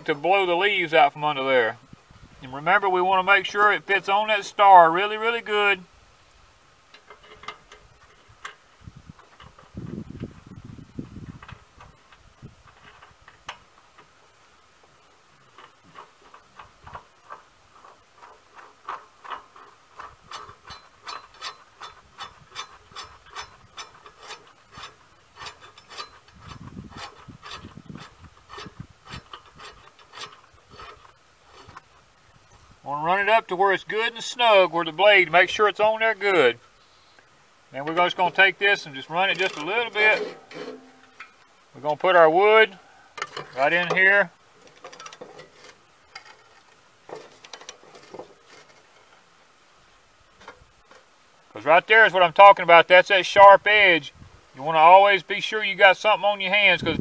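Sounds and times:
low rumbles of handling: 0.0s - 52.6s.

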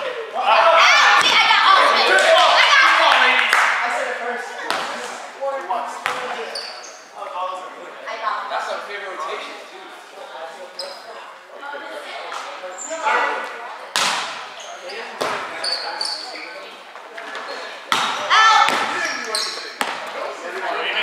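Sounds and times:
hands slapping volleyball: 4.6s - 5.0s, 13.9s - 14.4s
short high squeaks: 6.5s - 7.1s, 10.8s - 11.1s, 14.6s - 16.6s.

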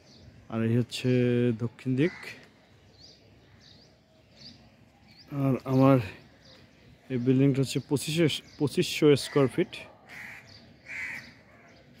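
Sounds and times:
bird calling: 1.6s - 12.0s.

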